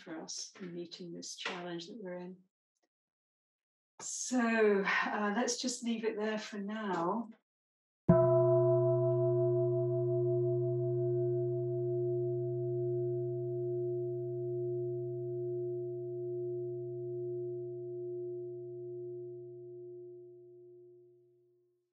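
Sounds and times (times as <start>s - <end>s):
singing bowl ringing: 8.1s - 21.2s.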